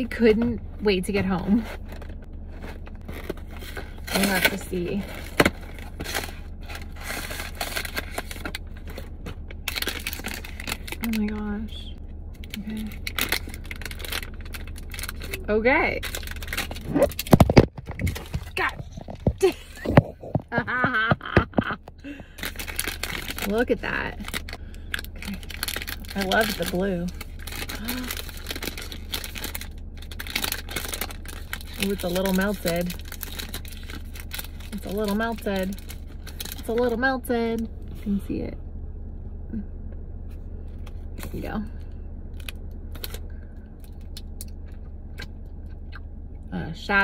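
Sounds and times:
plastic wrapper crinkling: 1.6s - 11.4s, 12.4s - 19.4s, 22.3s - 36.9s.

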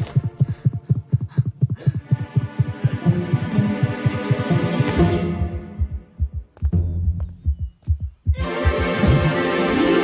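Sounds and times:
rapid heartbeat thumps: 0.0s - 10.0s.

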